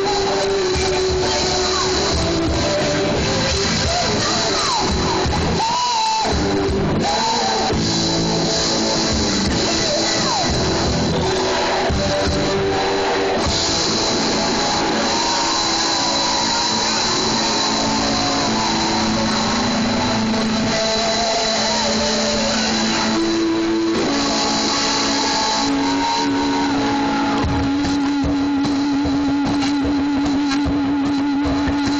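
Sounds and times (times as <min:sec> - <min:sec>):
live rock band playing: 0:00.0 - 0:31.9
long held wavering note: 0:12.4 - 0:30.4.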